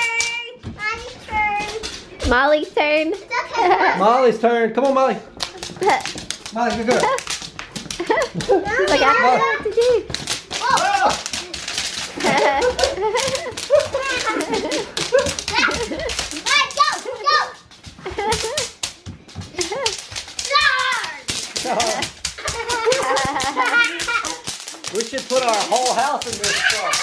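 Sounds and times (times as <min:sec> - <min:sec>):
children stomping: 0:04.8 - 0:27.0
bubble wrap popping: 0:05.4 - 0:16.8, 0:18.0 - 0:27.0
children squealing and laughing: 0:08.0 - 0:18.7, 0:19.5 - 0:24.8, 0:26.2 - 0:27.0.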